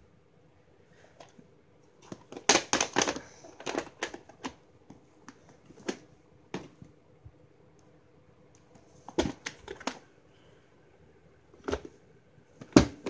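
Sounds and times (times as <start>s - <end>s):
plastic cassette case clicking: 2.1s - 4.6s.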